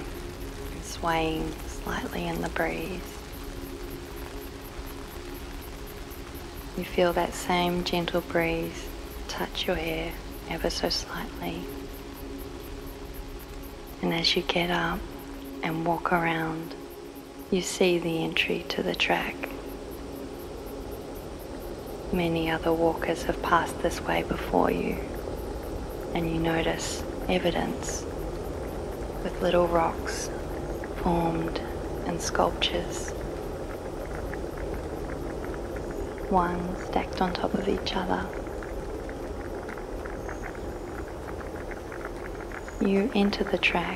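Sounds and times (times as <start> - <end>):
even hiss: 0.0 - 43.9
low sustained drone: 0.0 - 43.9
nature ambience noise: 0.0 - 43.9
faint small ticks: 1.5 - 15.7, 27.0 - 43.9.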